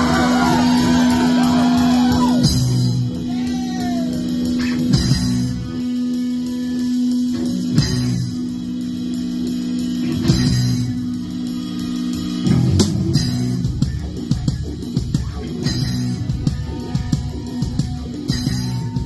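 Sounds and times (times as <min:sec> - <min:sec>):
electric guitars and bass droning: 0:00.0 - 0:19.0.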